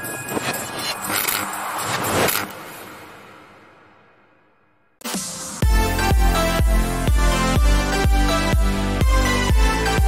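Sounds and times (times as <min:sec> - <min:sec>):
whooshes: 0:00.1 - 0:04.7.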